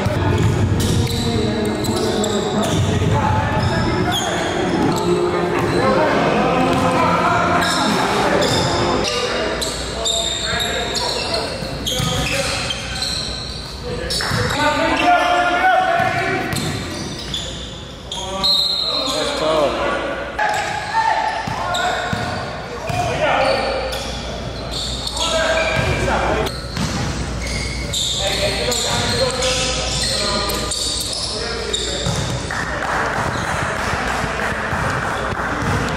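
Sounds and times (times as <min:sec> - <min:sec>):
basketball bouncing on court: 0:00.0 - 0:01.2, 0:26.7 - 0:27.2, 0:32.0 - 0:35.9
players' voices and shouts: 0:00.0 - 0:33.4.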